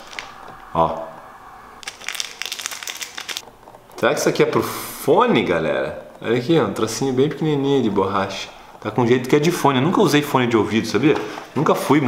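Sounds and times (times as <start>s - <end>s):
plastic packet crinkling: 0.0s - 0.6s, 1.8s - 3.6s.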